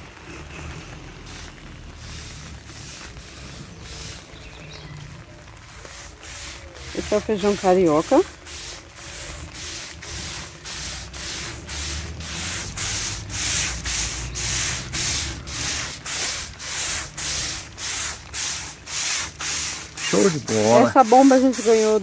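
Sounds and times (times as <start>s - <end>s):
sprayer spray hiss: 1.2s - 4.4s, 5.7s - 22.0s.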